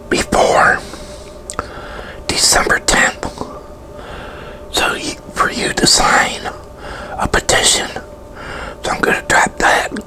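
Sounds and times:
man whispering: 0.1 - 1.7, 2.3 - 3.6, 4.7 - 8.1, 8.8 - 10.0.

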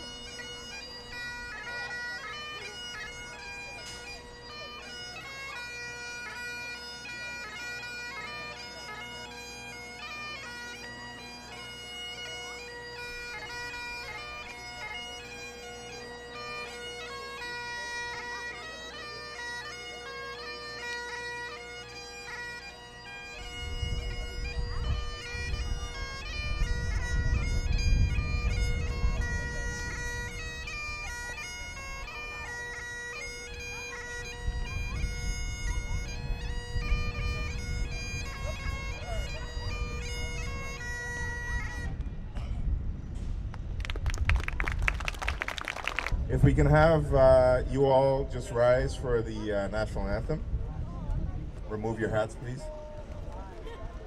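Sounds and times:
bagpipe playing: 0.0 - 42.2.

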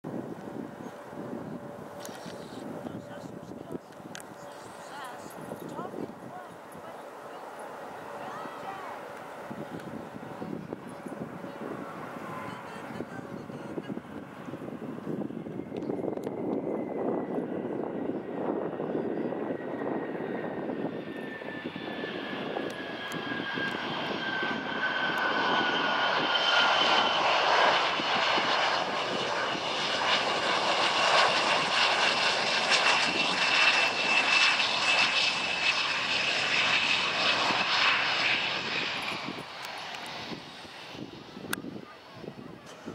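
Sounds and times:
jet engines rushing and whining: 0.1 - 42.9.

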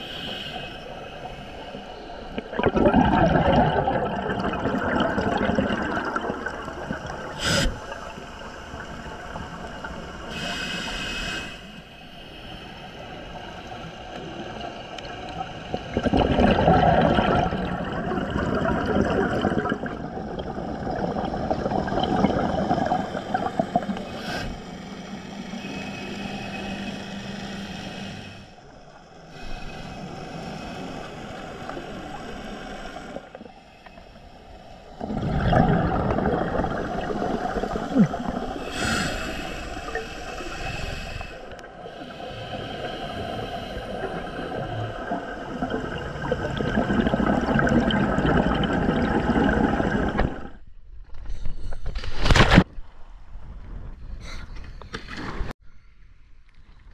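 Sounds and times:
scuba regulator bubbles underwater: 1.6 - 10.6, 13.8 - 24.2, 34.8 - 50.6.

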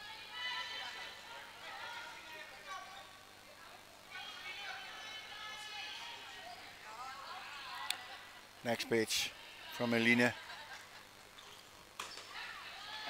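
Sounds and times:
players shouting in a hall: 0.0 - 3.1, 4.1 - 8.4.

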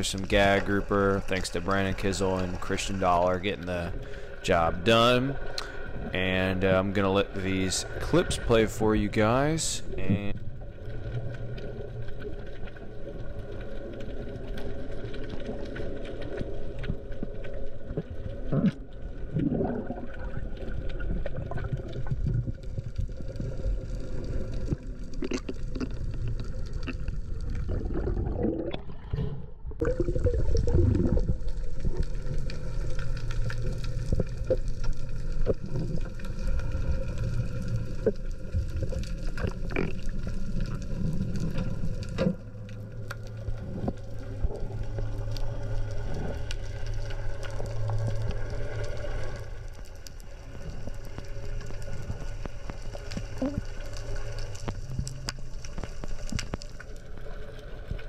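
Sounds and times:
low rumble of moving water: 0.0 - 58.0
small underwater clicks and crackles: 0.0 - 58.0.

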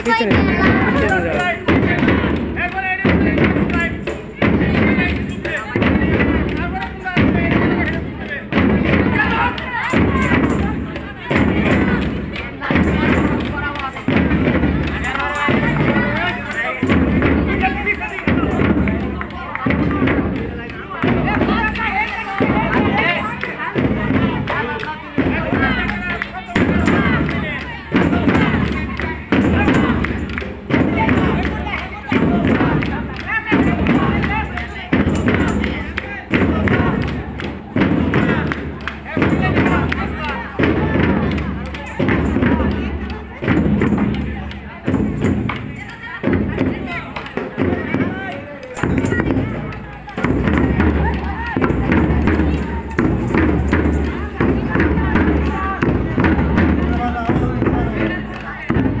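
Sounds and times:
drum thumping slow beat: 0.0 - 59.0
voices: 0.0 - 59.0.

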